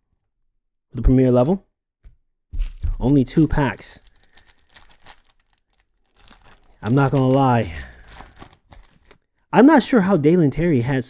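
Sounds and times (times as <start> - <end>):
foil wrapper crinkling: 3.3 - 9.3.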